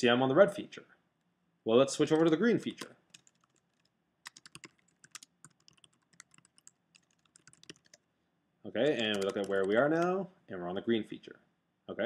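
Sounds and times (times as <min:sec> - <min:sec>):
computer keyboard typing: 0:02.0 - 0:08.0, 0:08.9 - 0:10.2.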